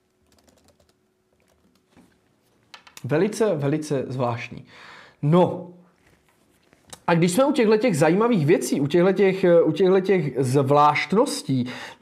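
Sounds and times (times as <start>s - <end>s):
typing on laptop keyboard: 0.1s - 1.9s.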